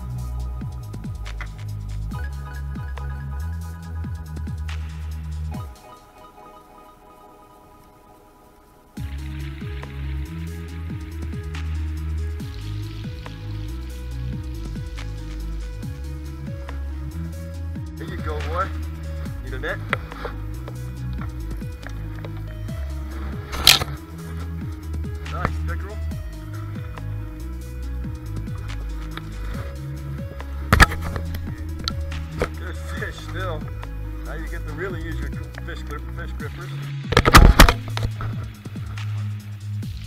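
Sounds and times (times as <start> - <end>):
background music with bass line: 0.0 - 40.0
voices: 18.0 - 37.0
sharp knocks: 37.1 - 38.5.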